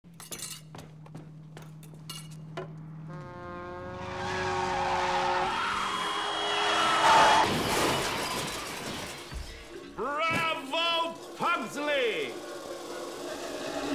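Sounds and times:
glass breaking: 0:00.1 - 0:00.7, 0:07.4 - 0:11.4
car tyres screeching: 0:02.4 - 0:13.9
car crash: 0:03.9 - 0:13.9.

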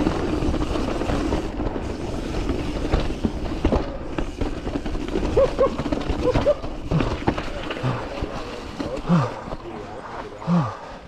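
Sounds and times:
bike rattling on trail: 0:00.0 - 0:11.0.

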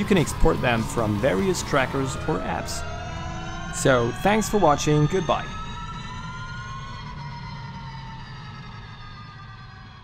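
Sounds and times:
electric drivetrain whine: 0:00.0 - 0:10.0
road and wind rumble: 0:00.0 - 0:10.0.

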